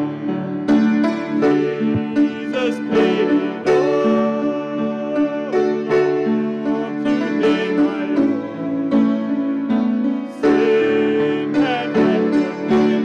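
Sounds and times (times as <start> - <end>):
piano: 0.0 - 13.0
accordion: 0.6 - 13.0.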